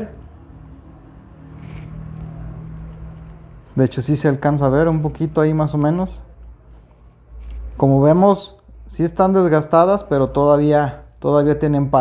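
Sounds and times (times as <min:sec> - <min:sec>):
vehicle engine humming: 0:00.2 - 0:07.8.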